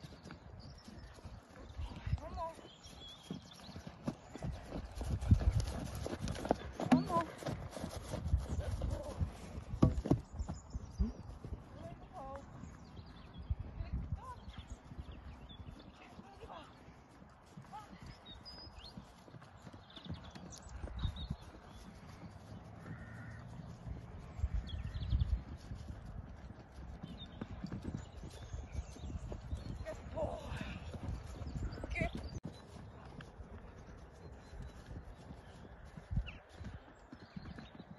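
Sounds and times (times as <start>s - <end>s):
horse hoofbeats on grass: 0.0s - 37.9s.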